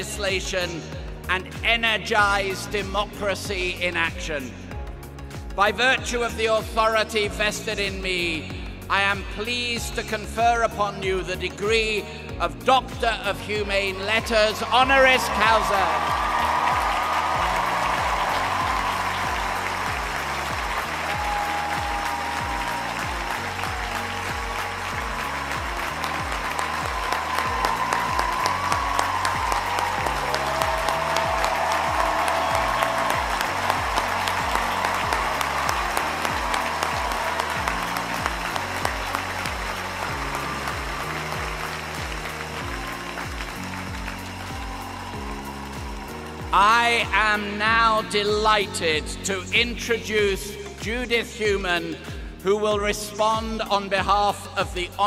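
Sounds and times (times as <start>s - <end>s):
music with slow bass line: 0.0s - 55.0s
crowd applauding: 13.9s - 48.1s.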